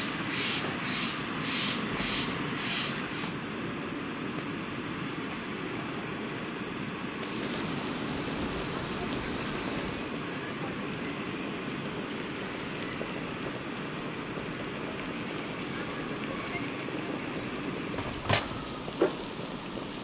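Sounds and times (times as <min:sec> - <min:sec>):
gas stove burner hissing: 0:00.0 - 0:20.0.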